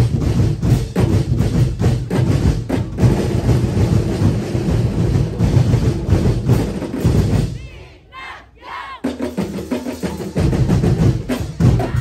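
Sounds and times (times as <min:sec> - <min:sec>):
deep bass drums: 0:00.0 - 0:07.6
drum ensemble playing: 0:00.0 - 0:12.0.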